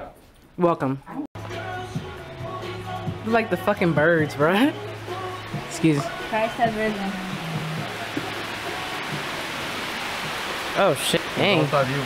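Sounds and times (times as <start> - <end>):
heavy rain pouring: 3.6 - 12.0.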